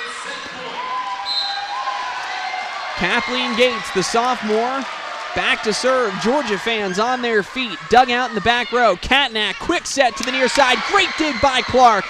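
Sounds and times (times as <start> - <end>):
crowd cheering and yelling: 0.0 - 12.0.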